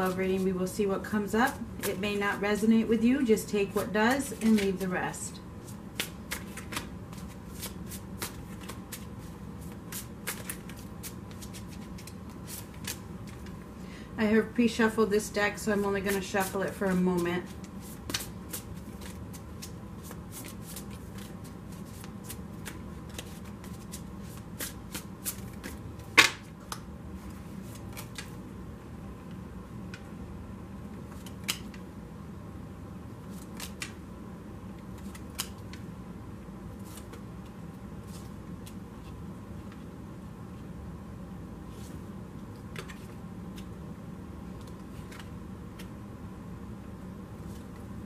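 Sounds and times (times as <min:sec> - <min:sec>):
low room hum: 0:00.0 - 0:48.0
playing cards shuffled by hand: 0:05.6 - 0:13.6, 0:16.0 - 0:28.4, 0:33.2 - 0:34.0, 0:34.8 - 0:35.8, 0:36.8 - 0:39.9, 0:41.7 - 0:43.7, 0:44.5 - 0:45.9.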